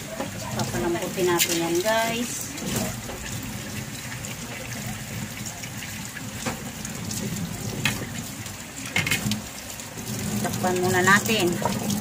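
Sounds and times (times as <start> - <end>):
meat simmering hissing and bubbling: 0.0 - 12.0.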